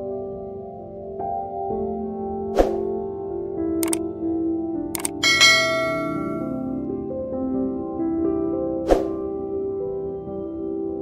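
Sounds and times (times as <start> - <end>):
soft ambient music: 0.0 - 11.0
sharp click: 5.0 - 6.5
bright bell ding: 5.0 - 6.6.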